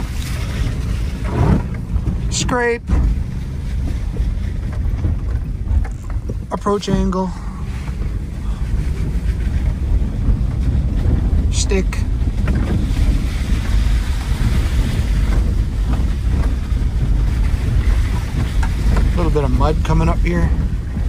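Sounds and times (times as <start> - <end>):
car engine rumble: 0.0 - 21.0
tyres on dirt and gravel: 0.0 - 21.0.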